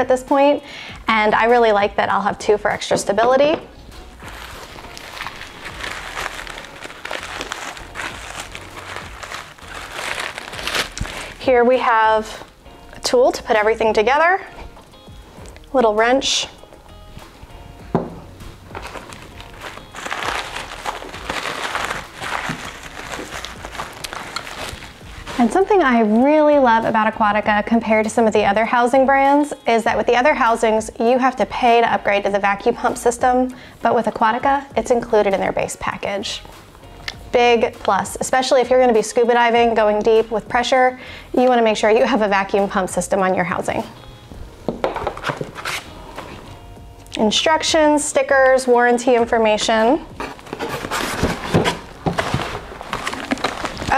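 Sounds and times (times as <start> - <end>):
paper rustling: 4.2 - 11.4, 18.7 - 25.8, 45.0 - 46.5, 50.2 - 53.9
packing wrap crinkling: 4.2 - 11.5, 18.7 - 25.9, 44.9 - 46.5, 50.2 - 53.9.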